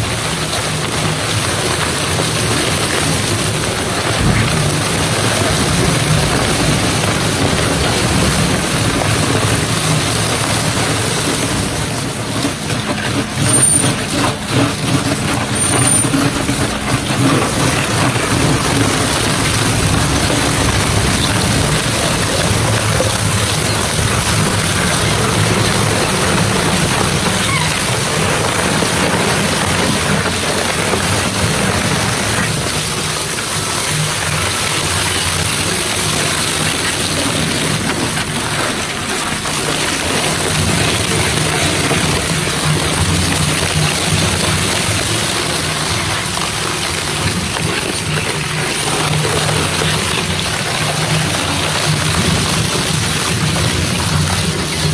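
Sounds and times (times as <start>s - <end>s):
low machine hum: 0.0s - 54.9s
shredder grinding: 0.0s - 54.9s.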